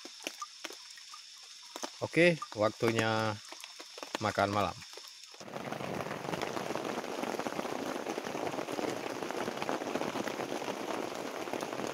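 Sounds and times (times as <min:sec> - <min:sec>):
rain on foliage: 0:00.0 - 0:11.9.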